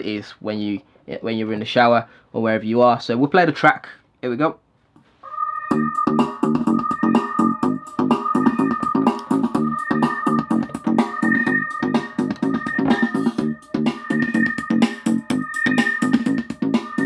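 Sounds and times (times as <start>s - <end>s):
electronic dance music through speaker: 5.3s - 17.0s.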